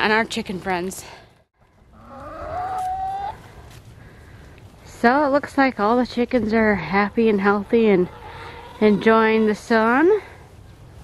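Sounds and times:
chicken long rising call: 1.9 - 3.6, 7.1 - 9.6.

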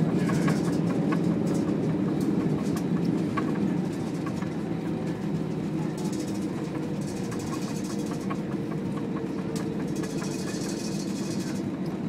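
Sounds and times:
engine and cabin hum: 0.0 - 12.0.

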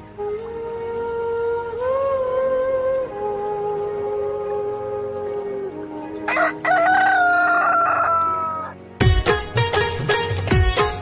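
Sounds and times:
sustained musical drone: 0.0 - 11.0
rooster crowing: 6.3 - 8.8.

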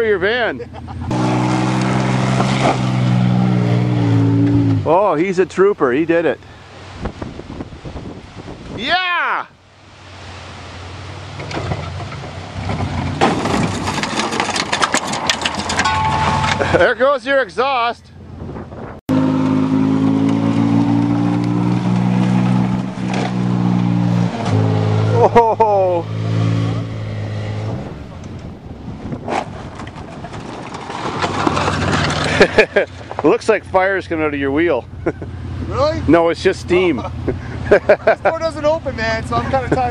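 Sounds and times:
engine running: 0.6 - 7.0, 9.6 - 17.0, 19.1 - 39.9
clattering knocks and scraping: 1.6 - 3.2, 11.3 - 16.9, 21.8 - 23.6, 29.1 - 33.6
rough rushing noise: 9.9 - 17.0, 18.2 - 39.9
van engine running: 31.2 - 39.9.

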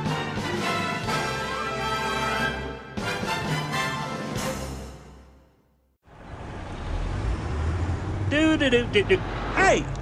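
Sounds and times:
road traffic rumble: 6.0 - 10.0.

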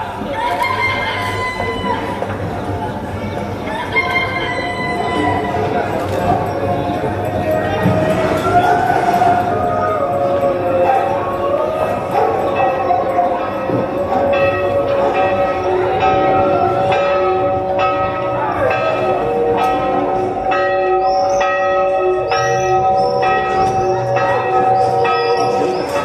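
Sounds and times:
bells ringing: 3.7 - 26.0.

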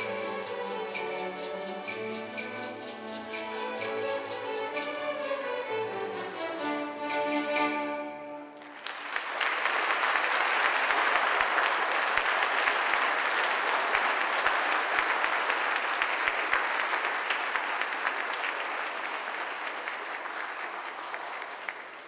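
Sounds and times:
audience applauding: 8.5 - 22.0.

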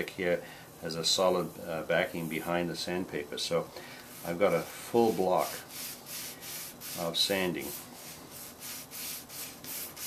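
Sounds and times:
sandpaper rubbing on metal: 4.1 - 10.0.

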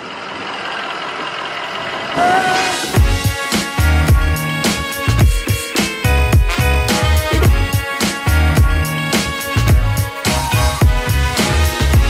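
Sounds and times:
vehicle hum: 0.0 - 4.5.

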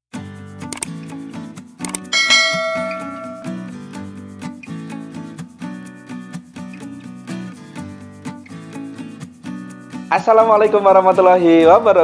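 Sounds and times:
background music with steady beat: 0.3 - 10.5
bell chime: 2.2 - 3.8.

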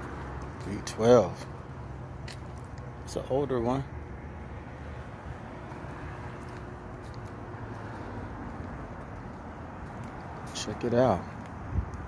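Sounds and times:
low urban rumble: 0.0 - 12.0.

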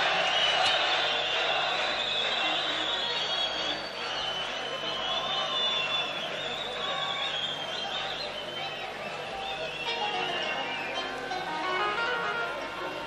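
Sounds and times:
live orchestral music: 9.9 - 13.0.

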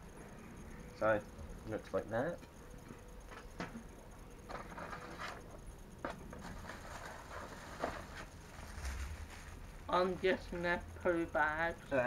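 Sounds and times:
plastic bag rustling: 6.4 - 9.8.

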